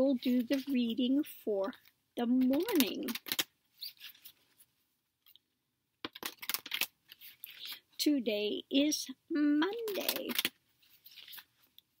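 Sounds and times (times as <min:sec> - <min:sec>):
cards clicking and rustling: 0:02.4 - 0:04.4, 0:06.0 - 0:07.8, 0:09.7 - 0:11.8.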